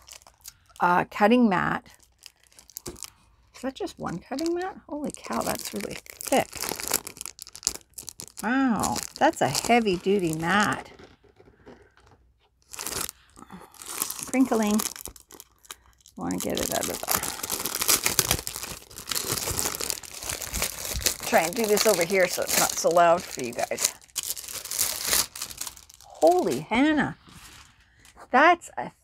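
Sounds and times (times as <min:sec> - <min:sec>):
plastic packaging crinkling: 0:00.0 - 0:00.9, 0:01.8 - 0:28.2.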